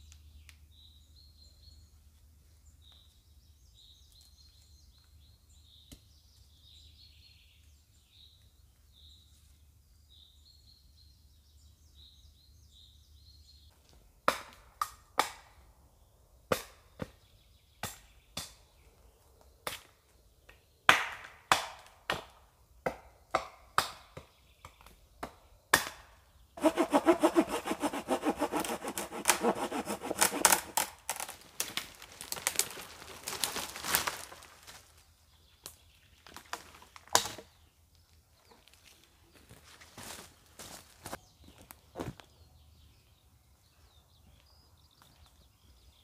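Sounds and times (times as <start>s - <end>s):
dry branches snapping: 26.6s - 35.0s
dry wood cracking and knocking: 28.3s - 34.8s.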